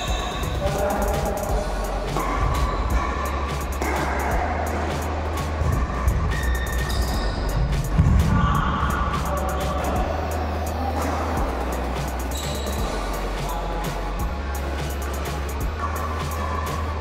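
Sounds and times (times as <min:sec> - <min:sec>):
music with heavy bass line: 0:00.0 - 0:17.0.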